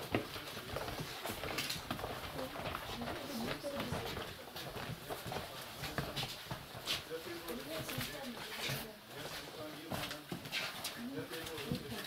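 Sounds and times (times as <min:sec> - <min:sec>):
knocks and shuffling: 0:00.0 - 0:12.0
murmur of girls' voices: 0:00.6 - 0:05.4.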